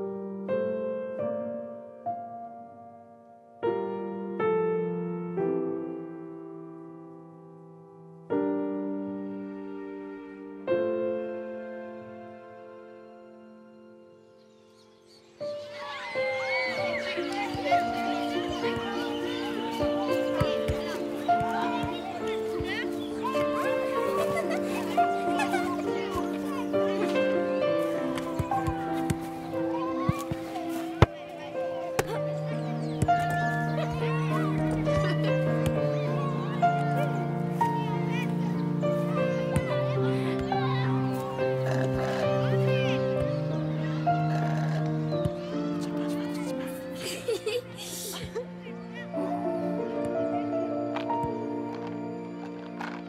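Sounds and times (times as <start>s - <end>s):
background music with held notes: 0.0s - 53.0s
children's voices playing: 15.4s - 50.8s.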